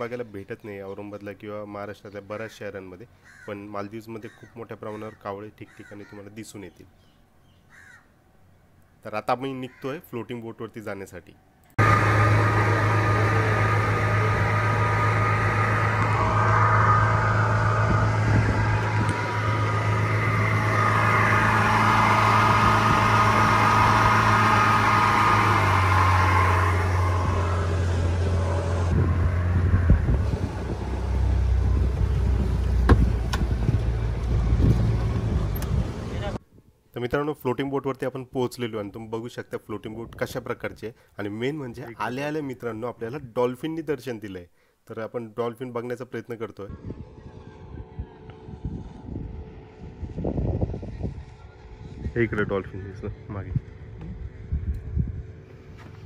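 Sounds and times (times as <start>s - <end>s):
outboard motor drone: 11.8s - 36.4s, 46.7s - 56.0s.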